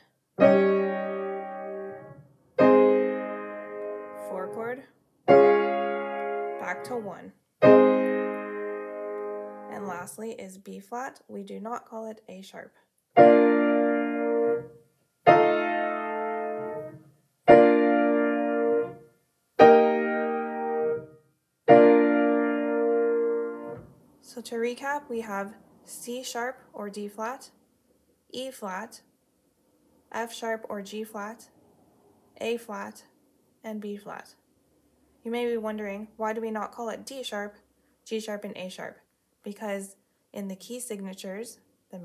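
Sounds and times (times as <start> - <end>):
piano block chords: 0.4 - 4.6, 5.3 - 7.0, 7.6 - 10.0, 13.2 - 19.0, 19.6 - 21.1, 21.7 - 23.9.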